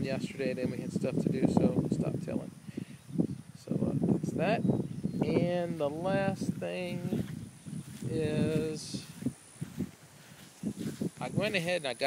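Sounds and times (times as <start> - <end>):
footsteps on grass: 5.3 - 12.0.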